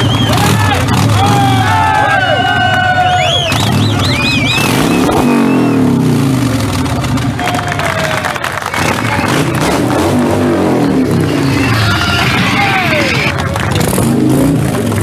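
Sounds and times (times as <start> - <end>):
crowd whistling and cheering: 0.0 - 6.1, 7.3 - 14.0
motorcycle engine revving: 0.0 - 15.0.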